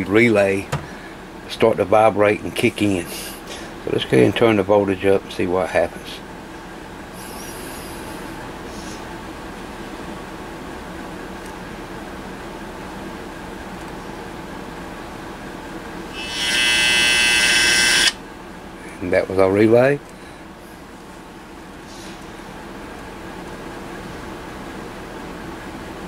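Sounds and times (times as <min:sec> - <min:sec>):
steady low hum: 0:00.0 - 0:16.2, 0:18.0 - 0:26.0
relay buzzing loudly: 0:16.1 - 0:18.2.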